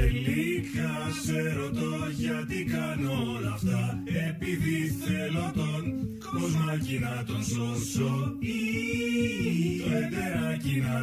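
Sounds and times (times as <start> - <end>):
low backing line: 0.0 - 0.2.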